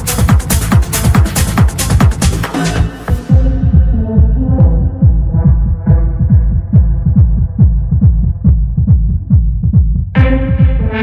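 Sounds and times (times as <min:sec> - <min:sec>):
techno kick drum: 0:00.0 - 0:11.0.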